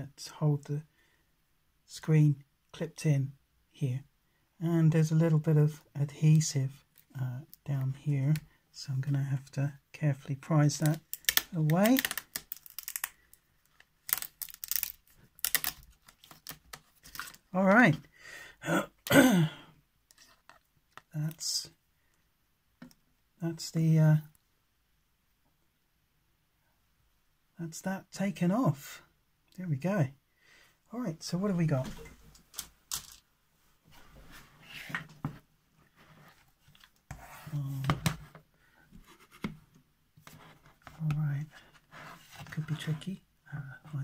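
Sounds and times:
laptop handling scrapes and taps: 34.7 - 39.6.

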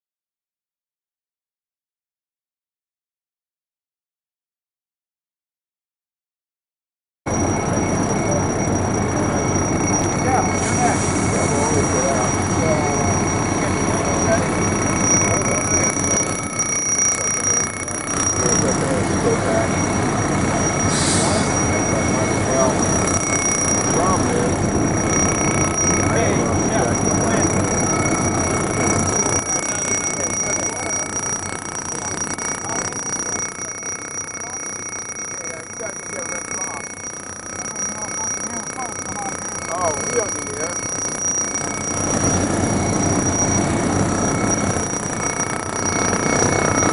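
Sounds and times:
mechanical drone with high whine: 7.3 - 46.9
fire hose spraying water: 10.6 - 12.0, 20.8 - 22.8.

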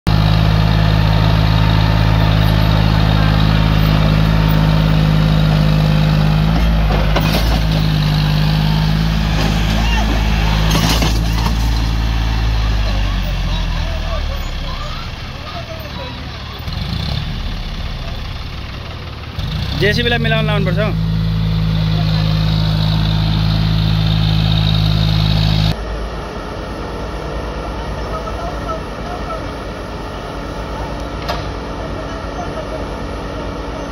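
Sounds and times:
tractor diesel engine labouring: 0.1 - 33.9.

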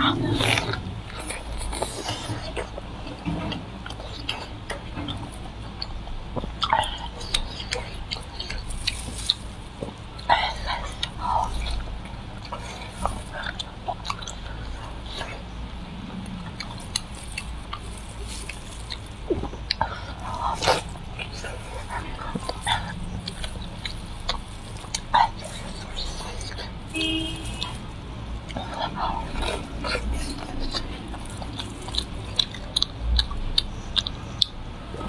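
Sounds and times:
chewing food: 0.0 - 35.0.

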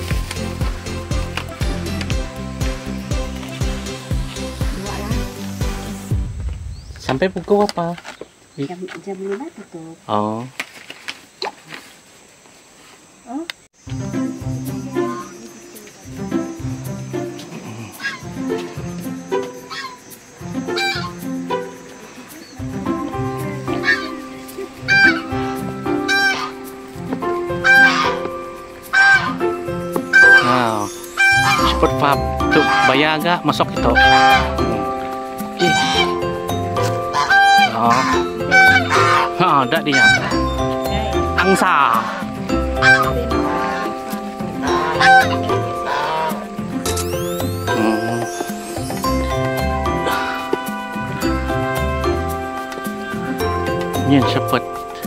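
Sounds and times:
background music with held notes: 0.0 - 6.7, 13.8 - 55.0
geese honking: 14.8 - 15.8, 16.4 - 55.0.

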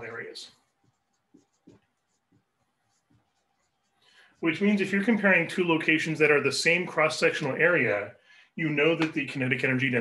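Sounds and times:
marker writing on whiteboard: 0.0 - 5.7.

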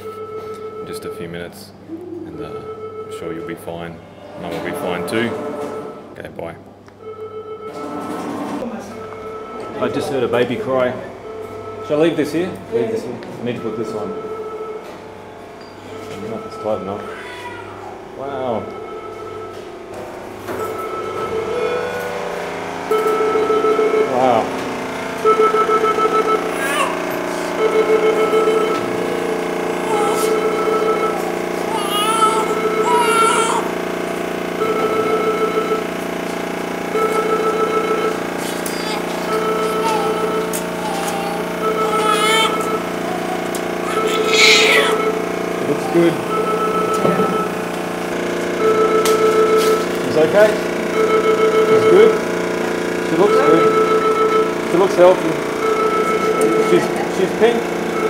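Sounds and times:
equipment hum: 0.0 - 58.0
newborn baby crying: 17.0 - 17.8, 26.5 - 27.0, 29.8 - 33.7, 38.6 - 46.3.

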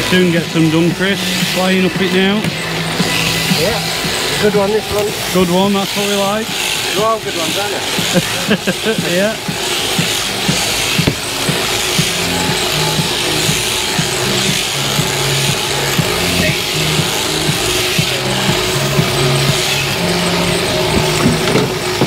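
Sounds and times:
background music: 0.0 - 22.0
electric shearing handpiece buzzing: 0.0 - 22.0.

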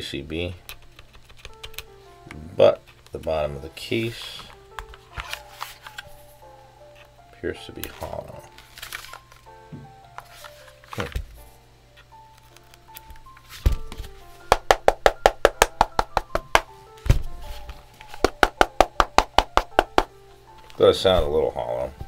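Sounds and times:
soft background music: 0.0 - 22.0
dull thumps of handling: 9.7 - 11.4, 13.5 - 14.2, 15.6 - 20.1, 20.7 - 22.0.

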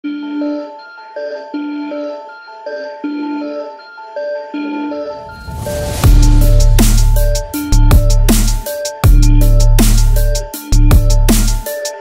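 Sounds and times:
repeating melody of pitched notes: 4.4 - 11.2.

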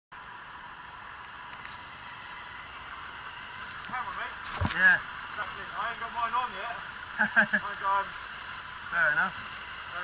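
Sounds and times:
street traffic hiss: 0.2 - 10.0.

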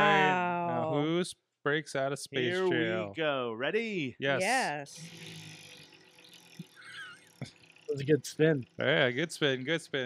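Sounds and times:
prize wheel clicking rapidly: 4.5 - 9.3.

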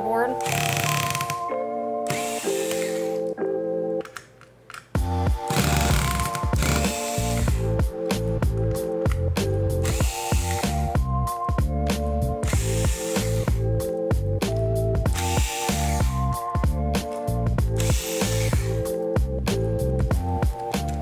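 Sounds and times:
background music with steady beat: 0.0 - 21.0
electric screwdriver running: 0.4 - 1.5, 2.1 - 3.3, 5.4 - 7.7, 9.8 - 11.0, 12.4 - 13.6, 15.1 - 16.2, 17.7 - 18.8.

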